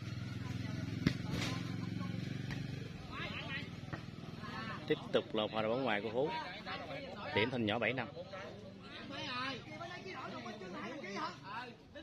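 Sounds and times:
ball thump: 1.0 - 1.6.

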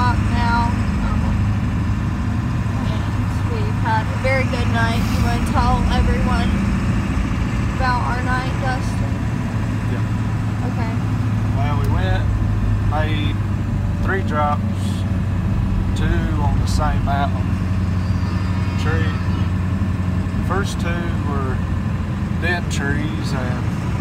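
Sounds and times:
voices talking: 0.0 - 1.6, 2.5 - 23.8
vehicle drone from inside cabin: 0.0 - 24.0.

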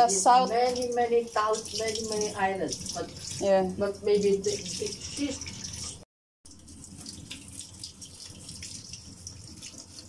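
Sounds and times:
tap water running into a sink: 0.0 - 10.0.

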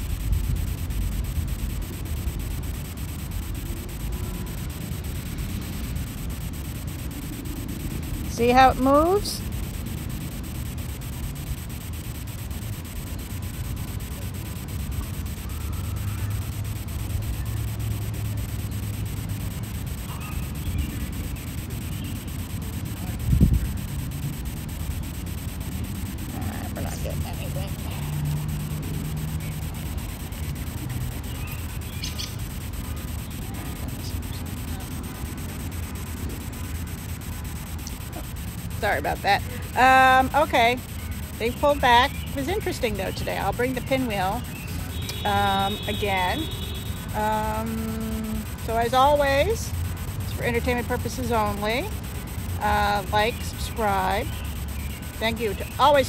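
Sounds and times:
faint bird chirps: 18.5 - 22.4, 31.1 - 34.7, 53.2 - 56.0
wind rumble on microphone: 23.2 - 23.8.

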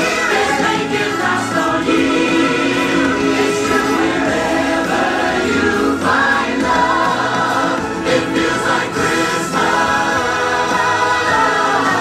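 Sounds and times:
choir singing long notes: 0.0 - 12.0
stage show backing track: 0.0 - 12.0.

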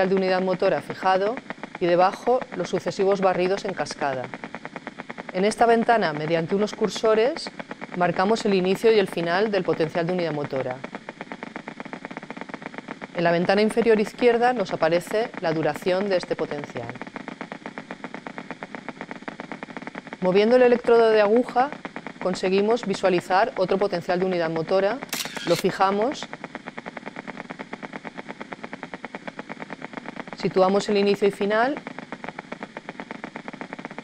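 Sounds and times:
rapid train of sharp clicks: 0.0 - 34.0.

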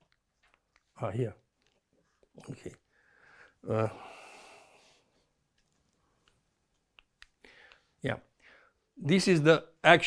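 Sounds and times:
person speaking: 0.7 - 3.0.

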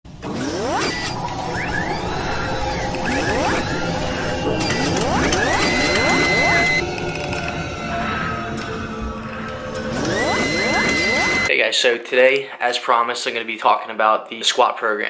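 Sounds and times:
mechanical whirring and ratcheting: 0.1 - 7.5, 9.8 - 11.5
rising pitch sweeps: 0.2 - 11.5
held high tone: 1.1 - 11.5.

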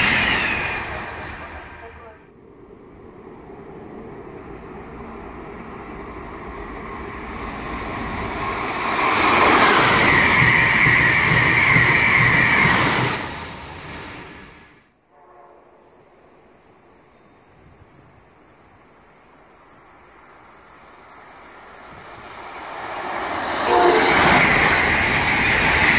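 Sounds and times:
train passing: 0.0 - 25.9.

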